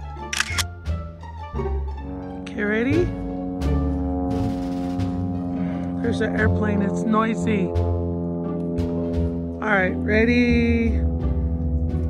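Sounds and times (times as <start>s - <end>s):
airplane drone overhead: 0.0s - 12.0s.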